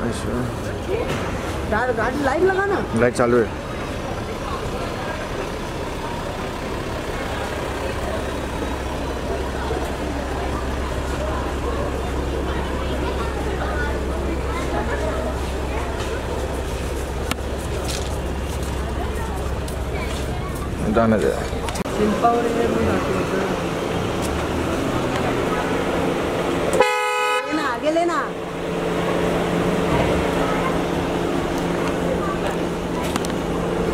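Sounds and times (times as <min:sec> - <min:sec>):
car engine rumble: 0:00.0 - 0:33.9
indistinct chatter: 0:00.0 - 0:33.9.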